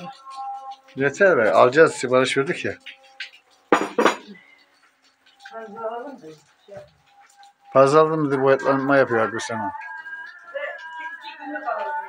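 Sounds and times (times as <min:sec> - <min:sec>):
tableware clinking: 0:03.7 - 0:04.4.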